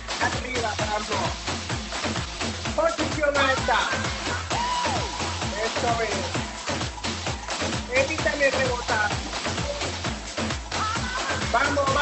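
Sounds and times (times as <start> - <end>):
electronic dance music: 0.0 - 12.0
person singing: 10.8 - 12.0.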